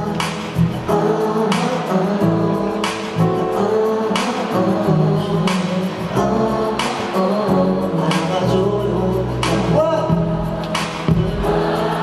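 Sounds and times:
live pop band: 0.0 - 12.0
man singing: 0.0 - 12.0.

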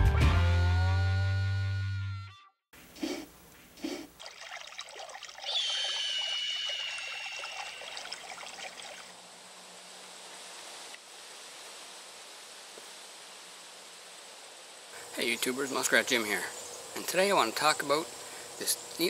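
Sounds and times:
faint outdoor hiss: 2.8 - 19.0
liquid pouring into mug: 4.2 - 5.8, 7.2 - 9.1.

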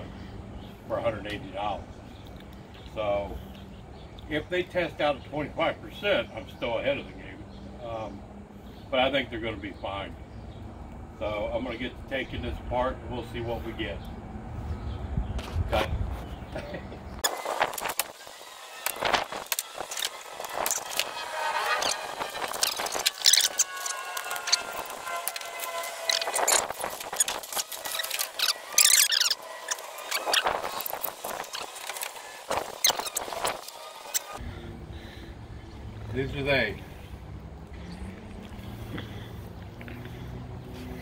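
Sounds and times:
cardboard and plastic crackling: 17.2 - 34.4
sharp clicks and squeaks: 18.8 - 34.4.

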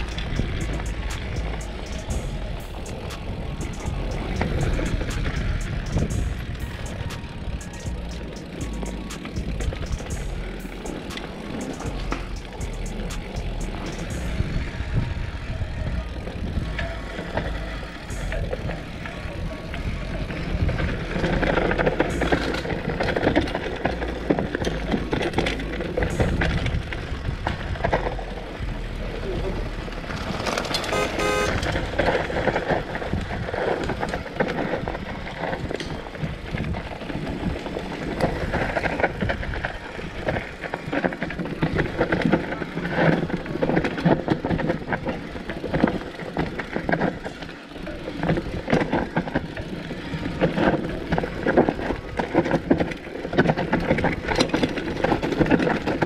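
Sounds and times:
bike clicking and rattling: 0.0 - 56.0
wind and tyres rumbling on dirt: 0.0 - 56.0.

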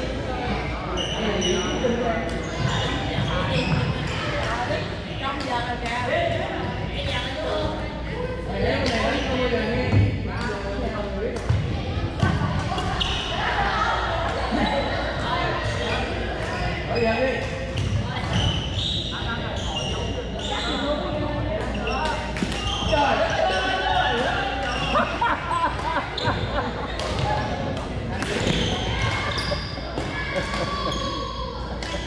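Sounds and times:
players' voices chattering: 0.0 - 32.0.

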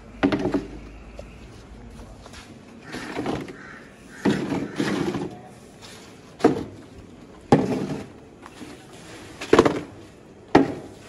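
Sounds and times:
crows cawing: 2.8 - 5.2.

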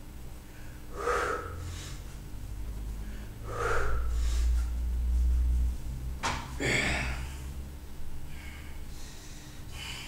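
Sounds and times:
low steady hum: 0.0 - 10.0
man breathing forcefully: 0.4 - 5.0, 8.2 - 10.0.

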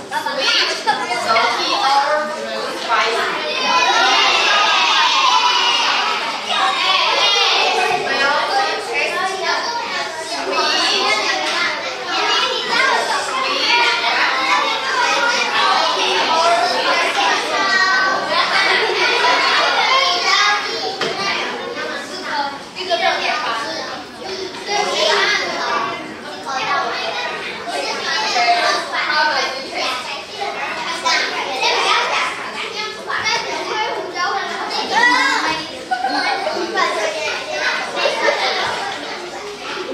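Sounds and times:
children chattering: 0.0 - 39.9.

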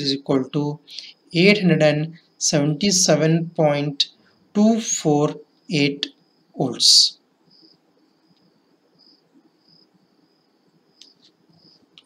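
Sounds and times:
insect trill and chirps: 0.0 - 12.0.

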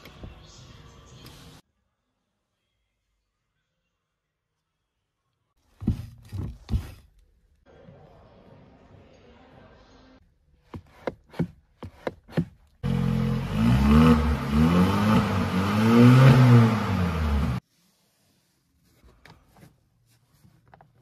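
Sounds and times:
car engine revving: 12.8 - 17.6.

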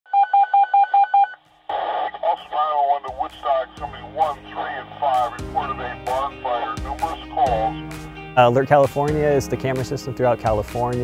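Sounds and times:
radio static hiss: 1.6 - 7.8.

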